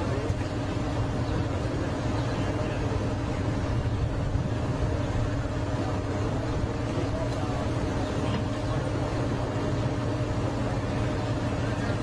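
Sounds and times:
faint steady whine: 0:00.0 - 0:12.0
fire engine motor rumbling: 0:00.0 - 0:12.0.

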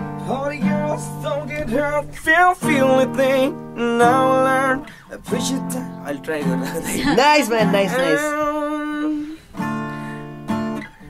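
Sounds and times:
acoustic guitar strumming chords: 0:00.0 - 0:11.0
person singing: 0:00.2 - 0:09.5.

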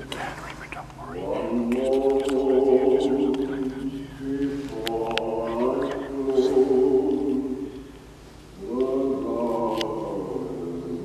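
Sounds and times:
voices chanting held notes: 0:00.0 - 0:11.0.

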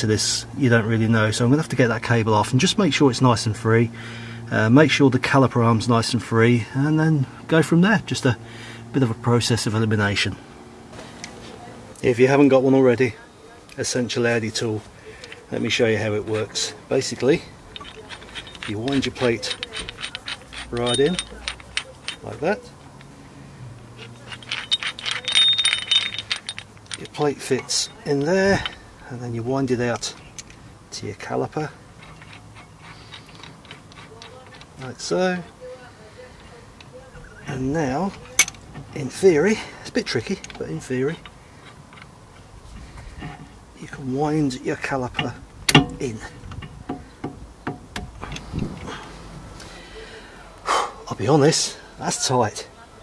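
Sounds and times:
small metallic clicks and clinks: 0:17.7 - 0:23.1, 0:24.0 - 0:28.9, 0:29.9 - 0:30.6, 0:32.0 - 0:35.0, 0:38.1 - 0:39.2, 0:40.1 - 0:42.5
brake piston tool clicking: 0:45.1 - 0:48.5.

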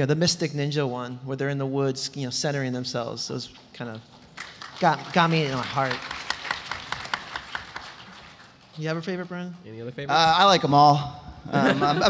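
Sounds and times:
light hand clapping: 0:04.4 - 0:09.5.

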